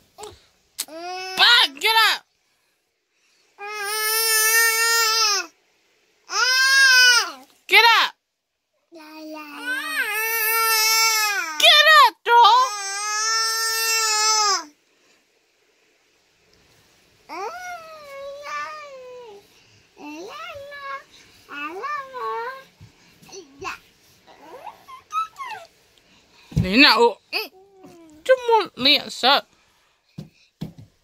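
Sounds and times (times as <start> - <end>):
baby crying: 6.3 - 7.4, 9.2 - 11.6, 12.6 - 14.7, 24.3 - 25.7
small child squeaking and whining: 23.4 - 25.7.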